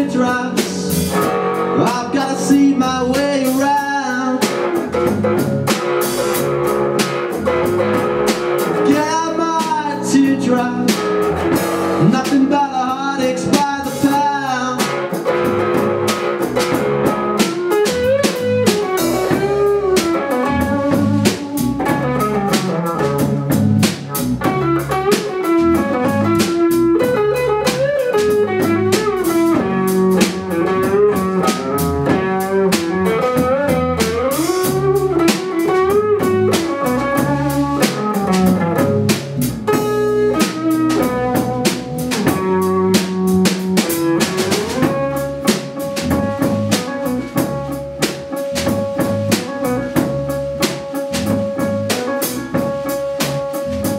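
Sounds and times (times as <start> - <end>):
drum kit: 0.0 - 53.9
electric guitar: 0.0 - 53.9.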